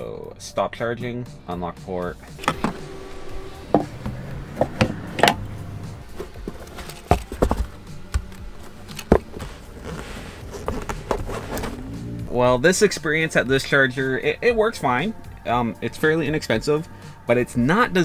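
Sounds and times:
handling clicks and knocks: 6.1 - 11.8.

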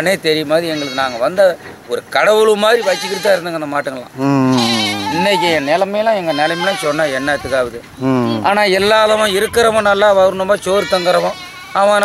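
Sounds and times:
farm animal bleating: 0.6 - 1.4, 2.6 - 3.7, 4.5 - 12.0
man talking: 4.1 - 5.8, 7.0 - 10.6.

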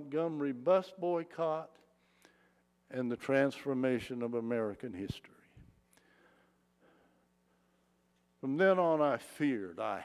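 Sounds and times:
man speaking with echo: 0.0 - 1.9, 2.9 - 5.6, 8.4 - 10.0
faint steady hum: 0.0 - 10.0
soft breath: 5.5 - 8.0.

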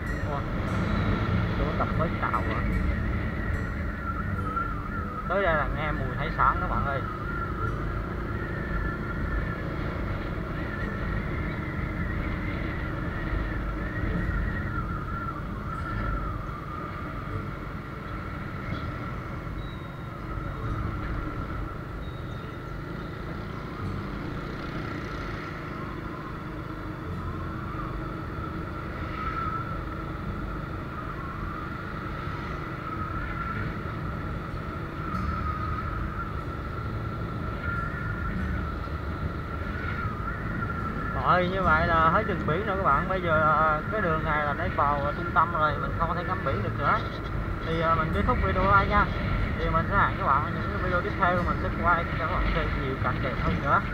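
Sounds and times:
mid-pitched whine: 0.0 - 53.9
vehicle rumbling along street: 0.0 - 53.9.

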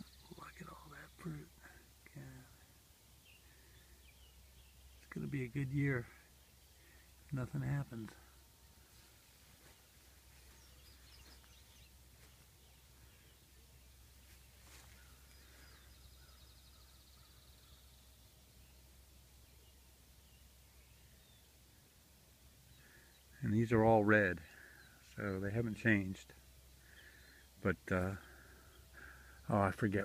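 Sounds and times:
faint birdsong chirps: 0.0 - 30.0.

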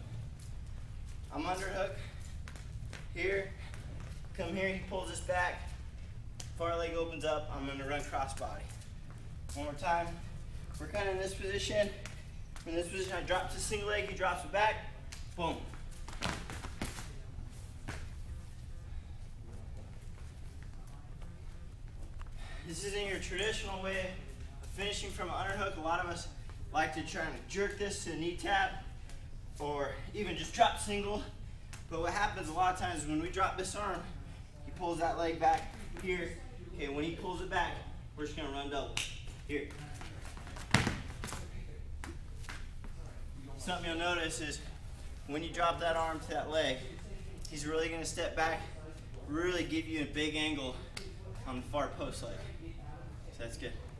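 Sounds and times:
low room hum: 0.0 - 53.9.

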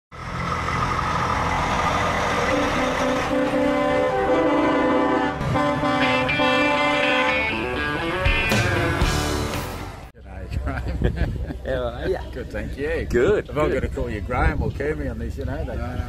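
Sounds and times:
low engine rumble: 0.1 - 16.0
truck air horn: 2.4 - 9.2.

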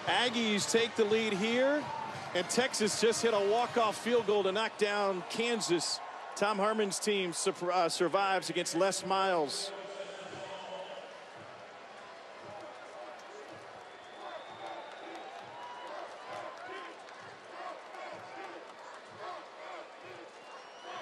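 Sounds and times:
crowd shouts: 0.0 - 21.0
crowd voices: 0.0 - 21.0.

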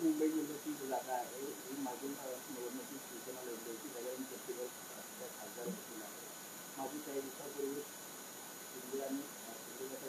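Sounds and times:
distant indistinct speech: 0.0 - 6.2, 6.8 - 7.9, 8.7 - 10.0
steady background hiss: 0.0 - 10.0.

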